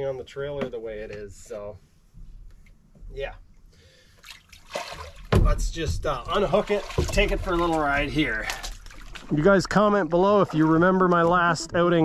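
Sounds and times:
shallow water splashing and trickling: 0:03.9 - 0:11.6.

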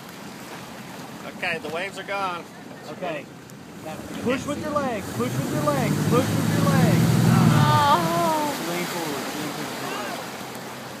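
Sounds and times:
churning wake: 0:00.0 - 0:11.0
voices calling out: 0:02.4 - 0:10.4
motorboat engine drone: 0:02.5 - 0:11.0.

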